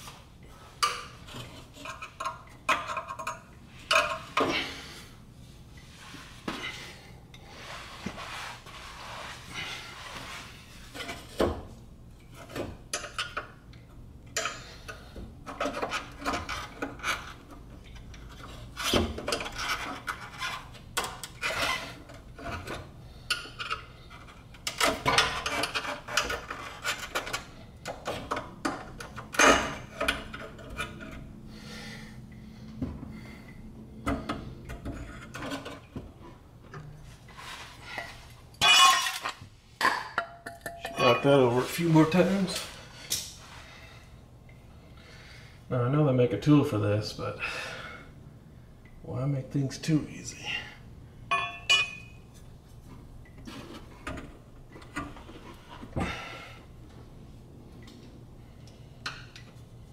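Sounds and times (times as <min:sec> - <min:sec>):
metal exhaust pipe clinking and scraping: 0:37.3 - 0:42.7, 0:51.3 - 0:52.5.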